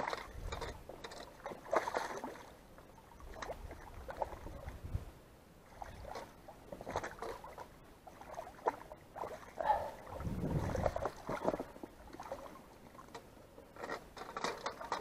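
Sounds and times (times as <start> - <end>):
fish thrashing and splashing in water: 0.0 - 4.7, 5.7 - 12.6.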